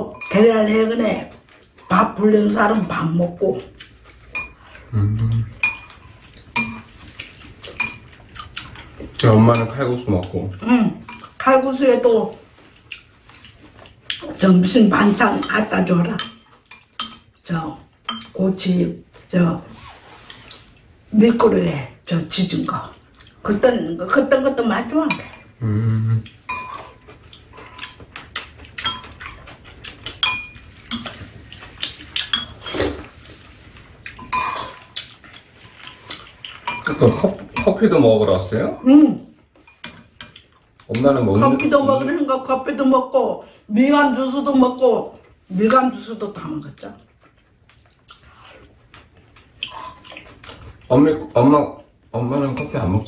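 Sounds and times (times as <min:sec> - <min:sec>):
spoons clinking on ceramic bowls: 0:00.0 - 0:03.1, 0:04.3 - 0:04.8, 0:05.6 - 0:07.0, 0:07.7 - 0:08.1, 0:09.4 - 0:09.9, 0:11.0 - 0:11.7, 0:15.3 - 0:17.3, 0:18.0 - 0:18.4, 0:25.0 - 0:25.5, 0:26.5 - 0:27.0, 0:28.8 - 0:31.2, 0:32.1 - 0:32.8, 0:34.2 - 0:35.0, 0:36.6 - 0:37.9, 0:49.7 - 0:50.2, 0:52.5 - 0:53.0
soup being slurped: 0:32.6 - 0:33.6.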